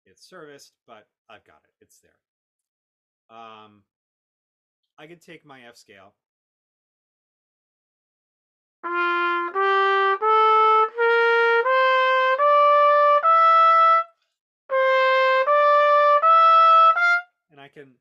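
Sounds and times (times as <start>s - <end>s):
trumpet playing ascending scale: 8.8s - 14.1s, 14.7s - 17.3s.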